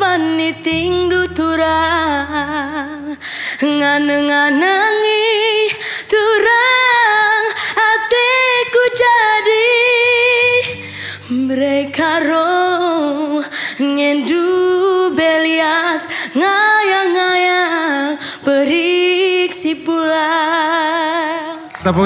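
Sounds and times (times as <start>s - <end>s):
girl singing unaccompanied: 0.0s - 21.7s.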